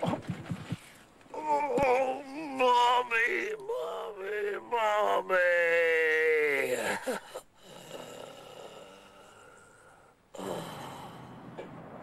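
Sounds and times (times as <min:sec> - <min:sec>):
man groaning: 0:01.4 - 0:09.7.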